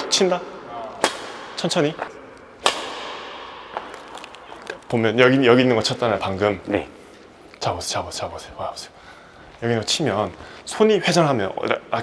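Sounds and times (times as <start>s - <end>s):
racket striking shuttlecock: 1.0s - 4.9s.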